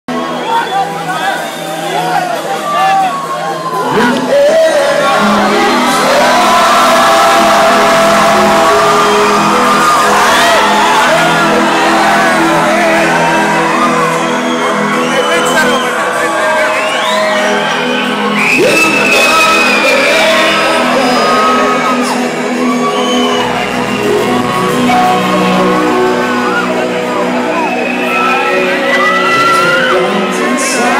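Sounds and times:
live band playing with singing: 0:00.1 - 0:30.9
audience singing along and whooping: 0:00.2 - 0:30.9.

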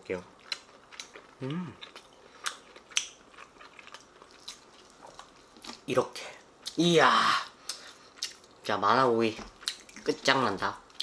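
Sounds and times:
person chewing meat: 0:00.3 - 0:06.8, 0:07.6 - 0:08.7, 0:09.5 - 0:11.0.

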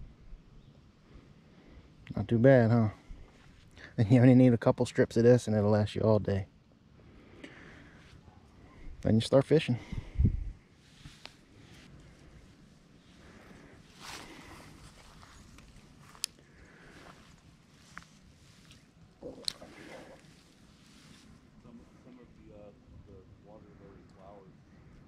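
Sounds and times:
faint rustling: 0:10.8 - 0:22.4.

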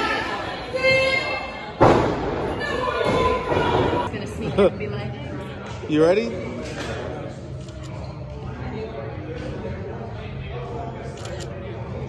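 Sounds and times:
voices and crowd chatter: 0:00.0 - 0:12.0.

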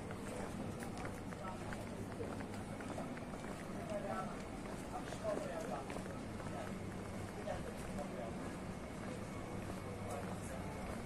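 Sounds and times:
footsteps on paving: 0:00.0 - 0:11.0
indistinct voices of passers-by: 0:00.0 - 0:11.0
low city hum: 0:00.0 - 0:11.0.

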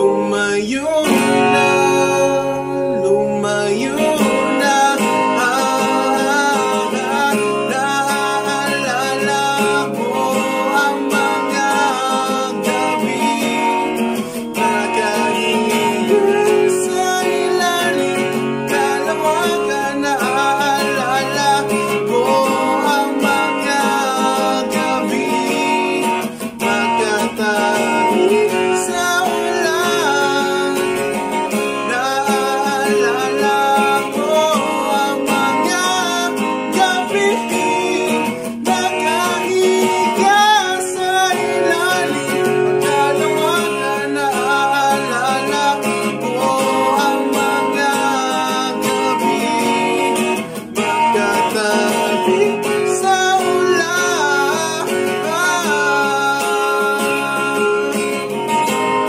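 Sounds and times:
acoustic guitar strumming: 0:00.0 - 0:59.0
man singing: 0:00.0 - 0:59.0.

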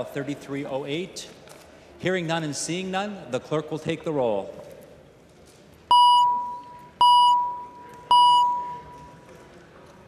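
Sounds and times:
voting chime tones: 0:05.9 - 0:09.0.

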